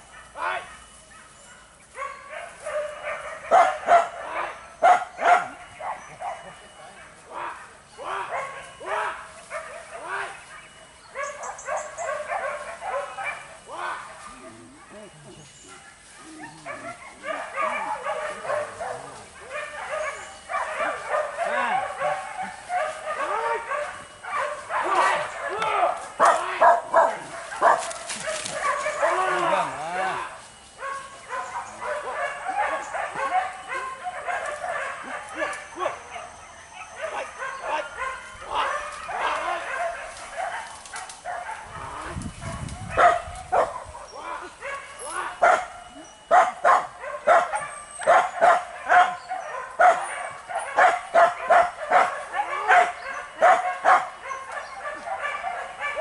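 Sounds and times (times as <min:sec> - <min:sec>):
dogs yelping and baying: 0:00.0 - 0:56.0.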